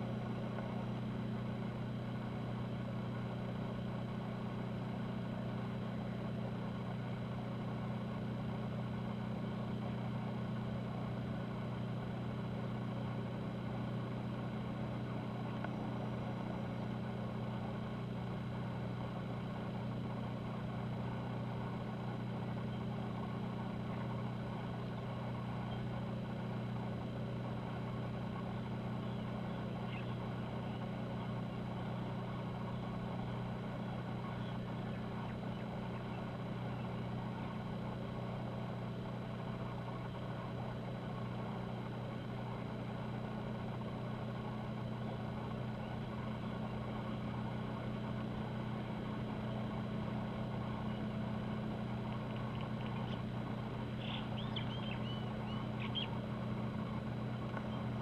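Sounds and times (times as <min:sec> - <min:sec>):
ship machinery humming: 0:00.0 - 0:58.0.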